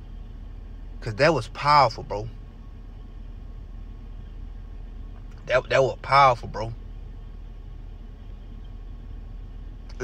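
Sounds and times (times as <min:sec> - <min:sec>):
car cabin hum: 0:00.0 - 0:10.0.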